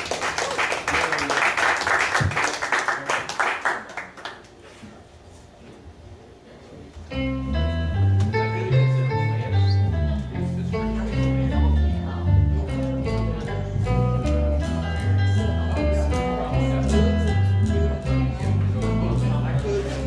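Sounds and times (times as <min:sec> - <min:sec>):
picked electric guitar notes: 0:07.0 - 0:20.0
steady bass line: 0:07.0 - 0:20.0.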